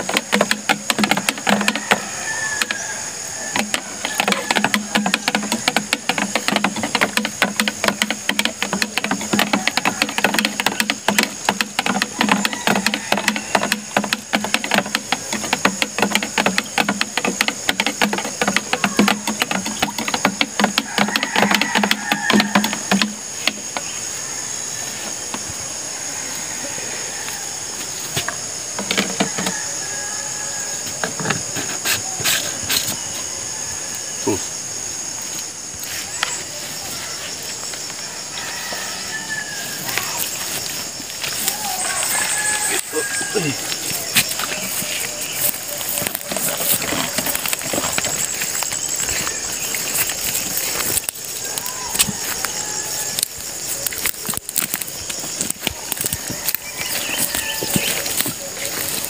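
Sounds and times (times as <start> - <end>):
steady hiss: 22.7 - 38.6.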